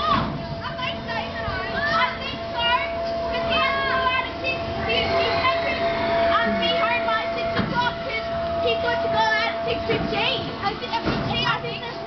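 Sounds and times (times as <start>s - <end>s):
steady hum: 0.0s - 12.0s.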